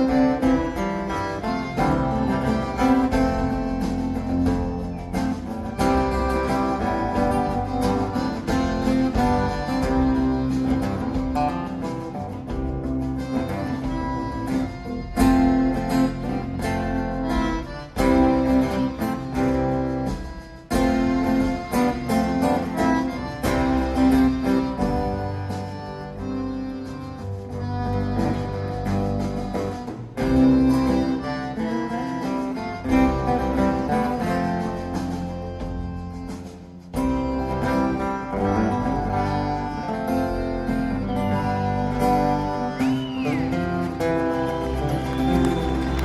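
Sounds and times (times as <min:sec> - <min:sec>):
fiddle: 0:00.0 - 0:46.0
strummed acoustic guitar: 0:00.0 - 0:46.0
upright bass: 0:00.0 - 0:46.0.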